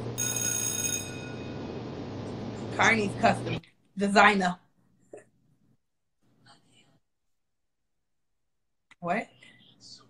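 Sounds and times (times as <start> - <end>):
steady low hum: 1.0 - 4.2.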